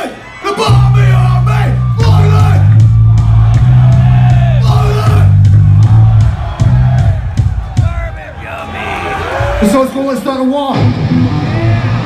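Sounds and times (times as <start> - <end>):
shouted vocals: 0.0 - 9.9
crowd yelling: 0.0 - 12.0
distorted guitar and bass chord: 10.8 - 12.0.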